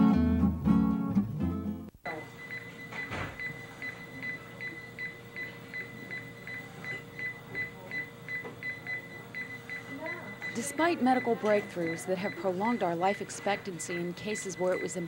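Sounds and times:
faint steady electronic tone: 2.0 - 15.0.

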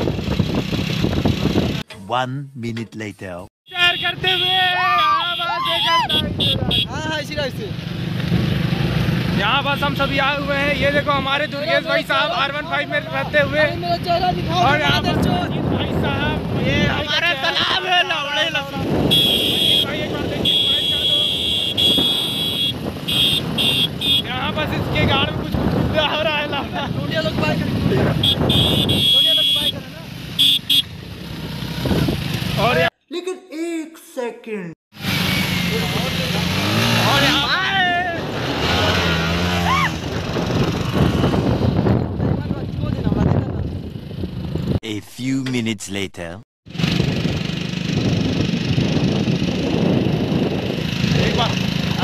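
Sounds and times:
rushing wind: 0.0 - 1.9, 5.8 - 29.2, 30.2 - 32.8, 36.4 - 44.8, 46.7 - 52.0
person speaking: 1.9 - 4.2, 44.8 - 46.5
voices shouting: 3.7 - 6.7, 37.0 - 38.3
motorcycle engine: 6.2 - 17.3, 18.1 - 32.9, 34.9 - 44.8, 46.7 - 52.0.

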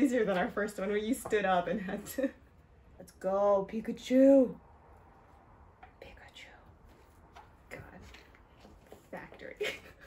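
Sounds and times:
soft handling sounds: 5.2 - 9.8.

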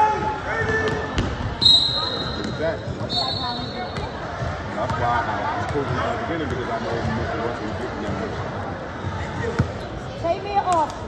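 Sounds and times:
voices in a gym: 0.0 - 11.0.

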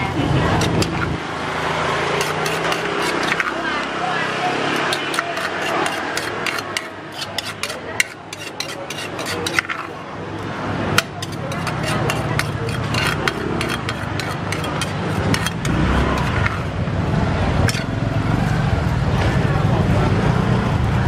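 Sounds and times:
metal spoon scraping mortar: 0.0 - 1.2, 2.0 - 3.9, 4.6 - 16.9, 17.6 - 18.0
murmur of background voices: 0.0 - 21.0.

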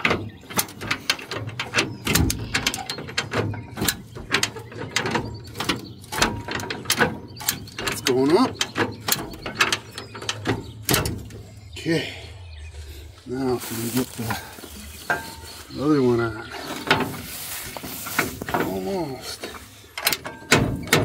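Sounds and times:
bumper jack ratchet clicking: 0.0 - 11.4.

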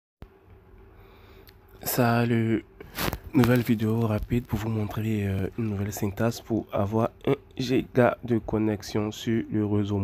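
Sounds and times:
faint room hum: 0.2 - 10.0
sharp intake of breath: 0.9 - 1.5
man speaking: 1.8 - 10.0.

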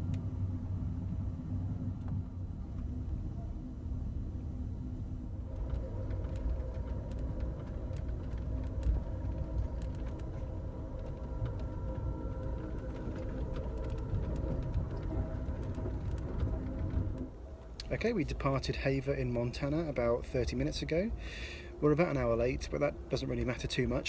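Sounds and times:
faint steady hum: 0.0 - 24.0
train rumbling at speed: 0.0 - 24.0.

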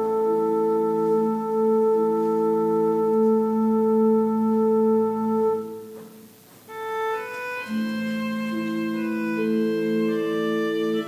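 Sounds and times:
church organ sustained chord: 0.0 - 6.0, 6.7 - 11.0.

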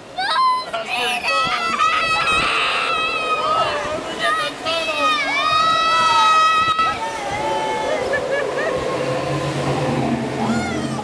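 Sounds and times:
water rushing and sloshing: 0.0 - 11.0
people screaming and squealing: 1.3 - 11.0.

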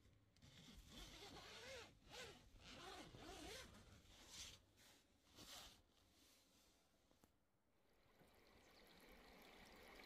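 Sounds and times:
zipper being pulled open: 0.5 - 4.6.

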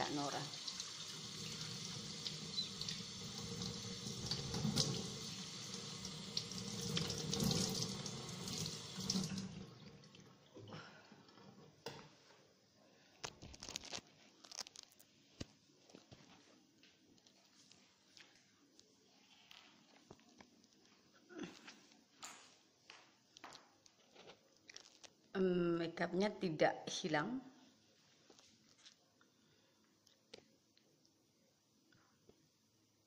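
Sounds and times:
kitchen tap running into sink: 0.0 - 10.6.

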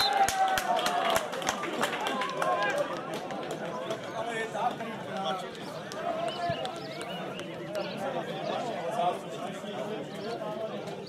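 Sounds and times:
men shouting and calling out: 0.0 - 11.0.

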